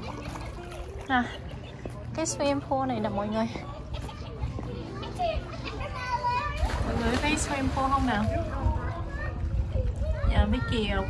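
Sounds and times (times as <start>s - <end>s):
children's voices at a pool: 0.0s - 11.0s.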